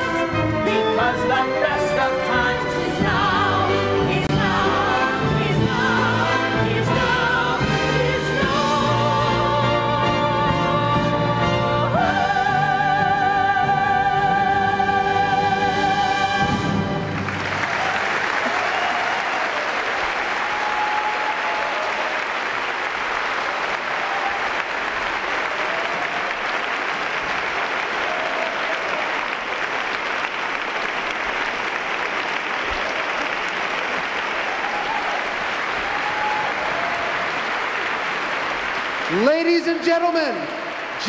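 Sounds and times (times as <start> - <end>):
audience applauding: 16.8 - 41.0
audience cheering: 17.2 - 41.0.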